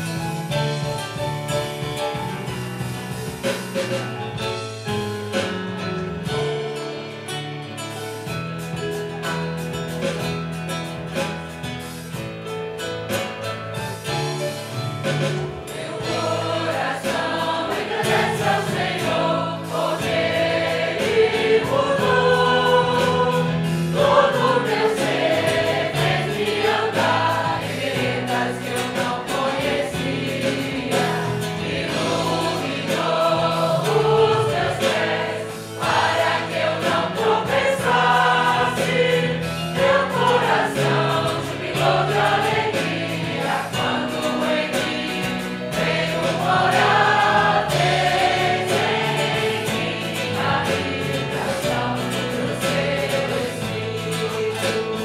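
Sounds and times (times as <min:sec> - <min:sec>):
church band playing: 0:00.0 - 0:55.0
group singing a hymn: 0:15.1 - 0:55.0.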